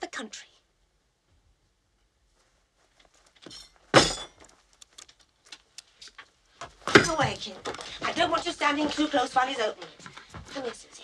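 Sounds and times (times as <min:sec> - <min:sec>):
sharp metallic clank ringing: 0:03.5 - 0:04.4.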